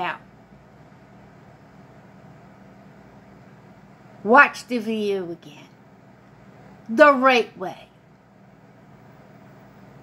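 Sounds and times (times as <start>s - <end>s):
light hum: 0.0s - 10.0s
low steady hiss: 0.0s - 10.0s.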